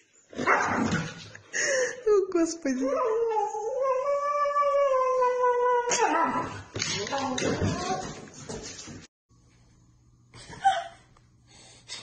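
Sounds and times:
soft breath: 11.4 - 12.0.

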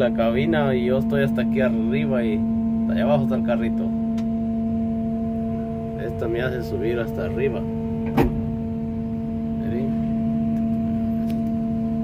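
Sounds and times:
engine and hydraulics humming: 0.0 - 12.0.

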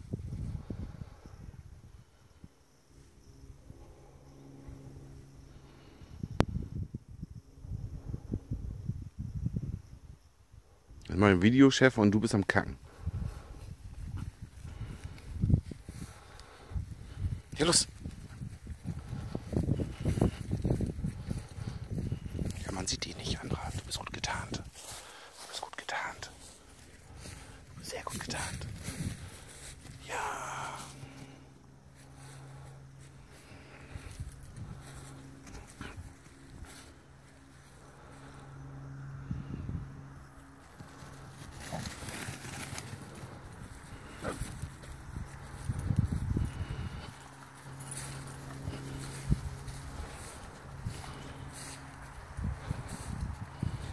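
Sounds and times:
steady low hum: 0.0 - 53.9
footsteps through long grass: 12.9 - 38.4, 40.6 - 53.9
dogs moving in grass: 40.6 - 53.9.

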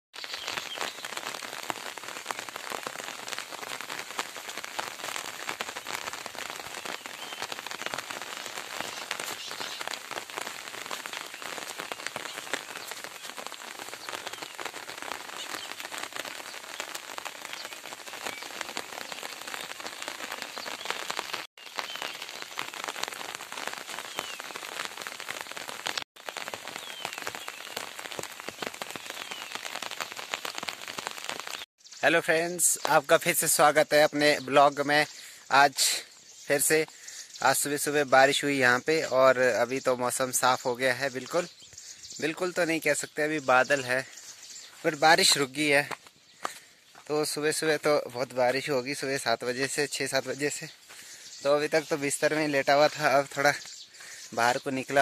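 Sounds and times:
rain falling on crops: 0.1 - 55.0.

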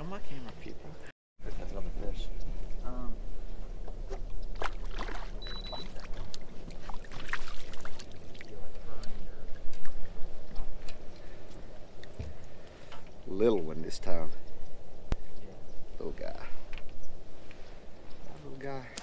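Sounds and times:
low hum: 0.0 - 19.0
light water splashing: 3.8 - 13.8.

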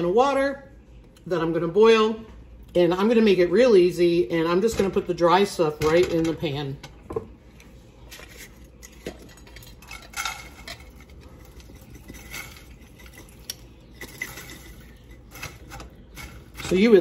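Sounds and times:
dry chunks rattling into a skillet: 8.1 - 17.0.

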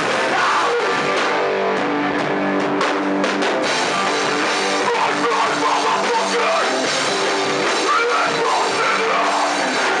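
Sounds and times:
distorted electric guitars: 0.0 - 10.0
punk band playing live: 0.0 - 10.0
drum kit hits: 2.6 - 10.0.

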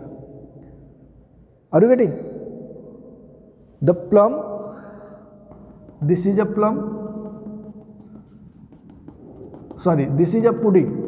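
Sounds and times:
chalk scratching on blackboard: 5.5 - 11.0.

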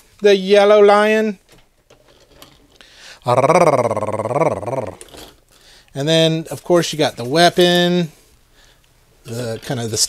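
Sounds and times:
wavering growl: 3.2 - 5.3.

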